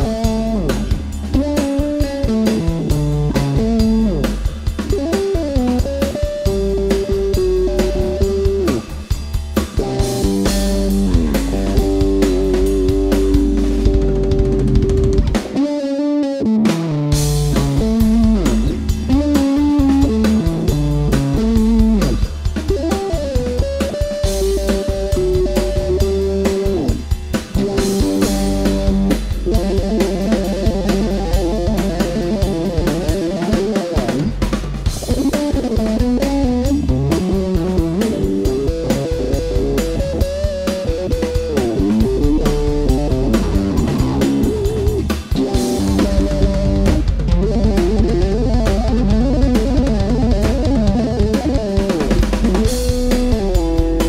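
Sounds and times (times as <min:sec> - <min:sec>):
drum kit: 0:00.0 - 0:54.0
electric bass guitar: 0:00.0 - 0:54.0.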